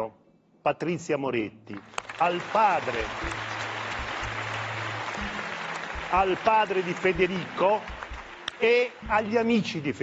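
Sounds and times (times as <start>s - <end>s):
audience applauding: 1.8s - 9.9s.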